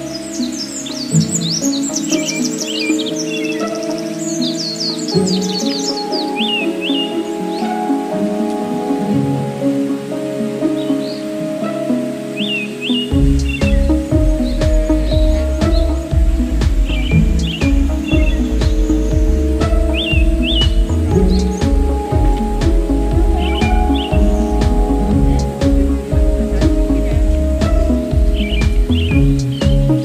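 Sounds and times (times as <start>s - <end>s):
slow background music: 0.0s - 30.0s
small birds chirping and trilling: 0.0s - 30.0s
low rumble: 13.1s - 30.0s.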